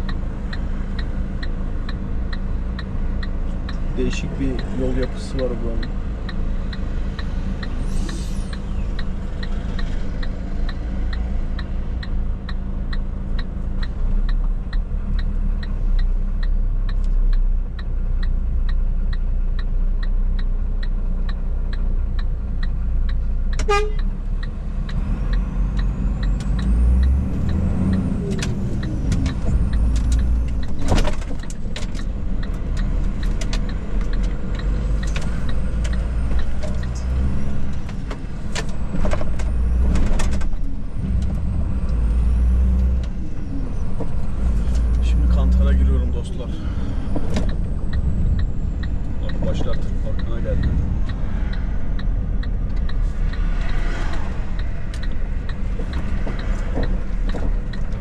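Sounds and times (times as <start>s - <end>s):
turn signal ticking: 0.0s - 58.0s
truck diesel engine running: 25.4s - 58.0s.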